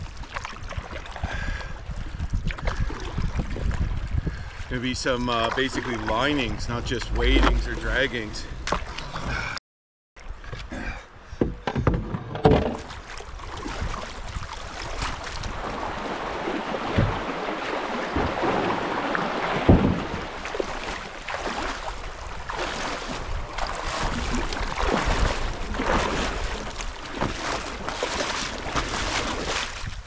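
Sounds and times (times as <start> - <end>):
canoe thumps: 11.4 - 13.0, 16.0 - 21.4, 24.8 - 29.0
hollow knocks from canoe: 11.4 - 13.0, 18.0 - 21.0, 27.0 - 29.0
creek water rushing: 13.4 - 29.6.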